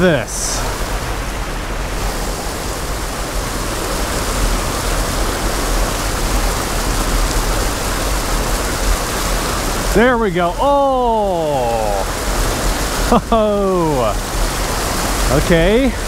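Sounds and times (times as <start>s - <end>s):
water pouring over a dam: 0.0s - 16.0s.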